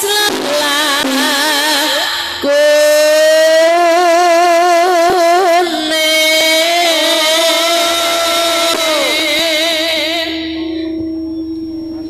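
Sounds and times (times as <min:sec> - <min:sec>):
woman singing a long note: 0:00.0 - 0:11.0.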